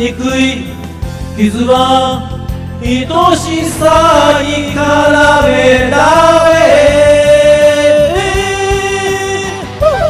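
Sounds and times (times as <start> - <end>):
pop-rock backing track: 0.0 - 10.0.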